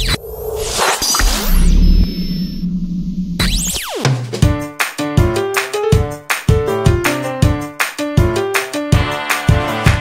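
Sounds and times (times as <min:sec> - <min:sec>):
electronic hum: 0:00.0 - 0:03.9.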